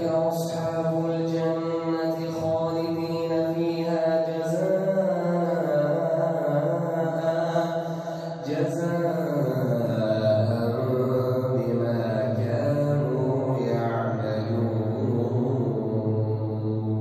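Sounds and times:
man chanting a recitation: 0:00.0 - 0:17.0.

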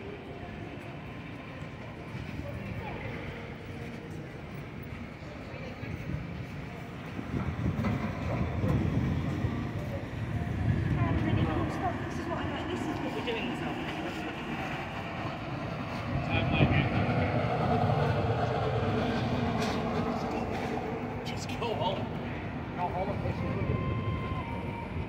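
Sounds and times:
passersby talking: 0:00.0 - 0:25.0
traffic rumble: 0:00.0 - 0:25.0.

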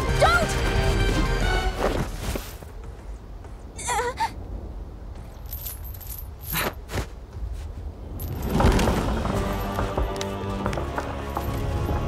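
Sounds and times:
metal chain clinking: 0:05.3 - 0:06.8, 0:08.2 - 0:10.2, 0:11.2 - 0:12.0.

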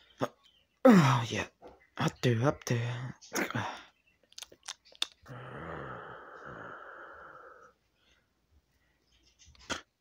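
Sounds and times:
person exhaling breathily: 0:05.3 - 0:07.8.

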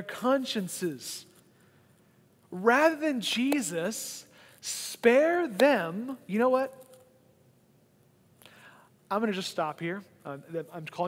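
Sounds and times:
soft short breath: 0:08.4 - 0:08.9.

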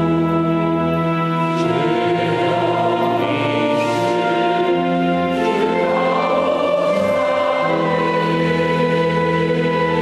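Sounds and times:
choir singing a hymn: 0:01.4 - 0:10.0.

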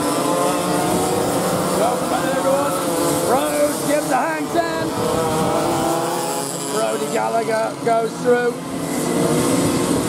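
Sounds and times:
racing kart engines: 0:00.0 - 0:10.0.

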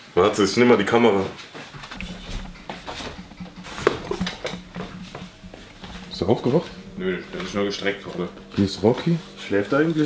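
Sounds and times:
footsteps on tiled floor: 0:01.2 - 0:07.4
faint low hum: 0:01.8 - 0:10.0.

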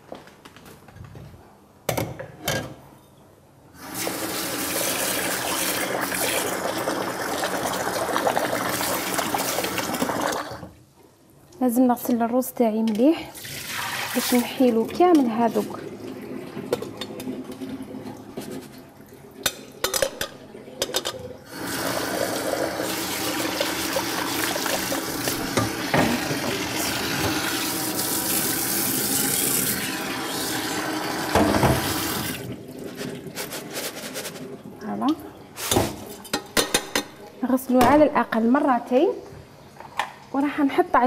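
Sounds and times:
tap water running into metal bowl: 0:03.9 - 0:10.7, 0:20.8 - 0:32.4.

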